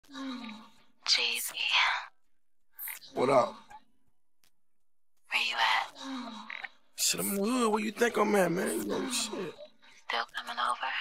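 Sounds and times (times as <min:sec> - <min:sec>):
person speaking breathy words: 0:08.0 - 0:09.6.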